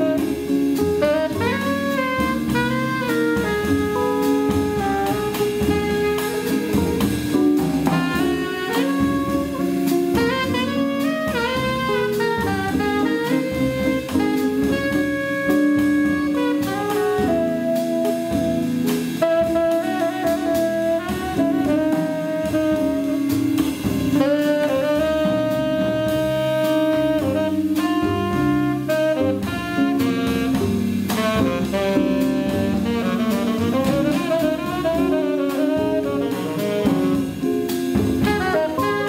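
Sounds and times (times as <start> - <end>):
drum kit: 0.0 - 39.0
jazz band accompaniment: 0.0 - 39.0
tenor saxophone melody: 0.0 - 39.0.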